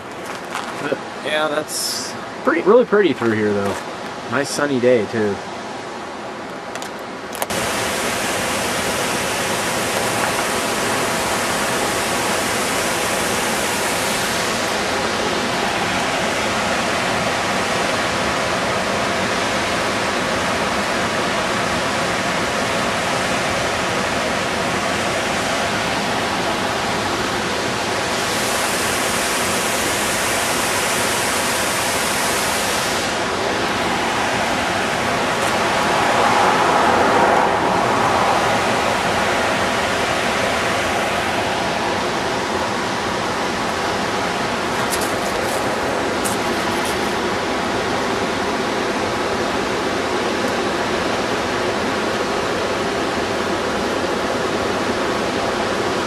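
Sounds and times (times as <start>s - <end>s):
waterfall splashing: 7.4s - 55.5s.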